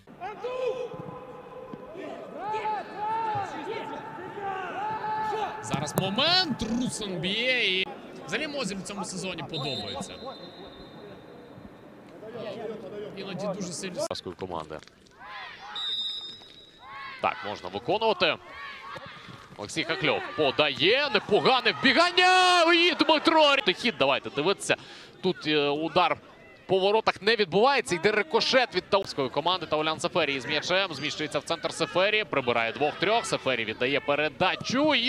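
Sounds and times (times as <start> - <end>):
players shouting: 0.1 - 11.3, 16.8 - 24.5
men shouting: 0.3 - 7.5
referee's whistle blast: 9.5 - 11.4, 15.7 - 16.9.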